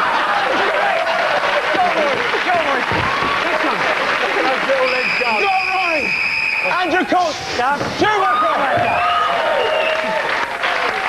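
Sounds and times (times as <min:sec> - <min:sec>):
audience applauding: 0:00.0 - 0:07.2, 0:08.2 - 0:11.0.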